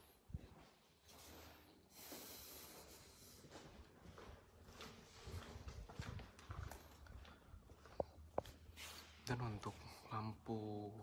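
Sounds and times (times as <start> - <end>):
footsteps on tiled floor: 0.0 - 10.2.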